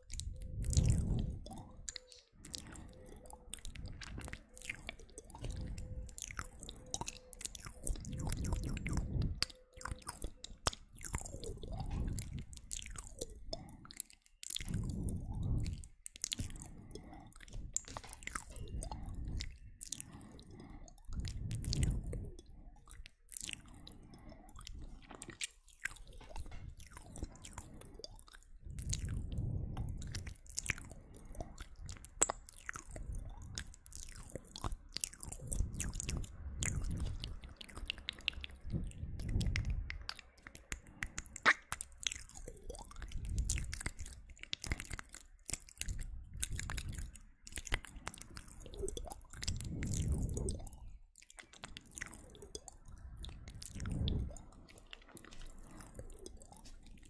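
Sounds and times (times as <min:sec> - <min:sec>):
wet lip and tongue clicks: 0:00.0 - 0:57.0.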